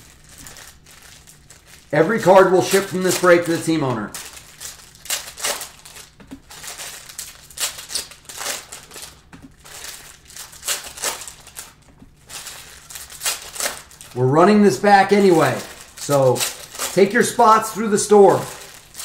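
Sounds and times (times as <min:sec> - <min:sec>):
foil wrappers crinkling: 0:00.0 - 0:19.0.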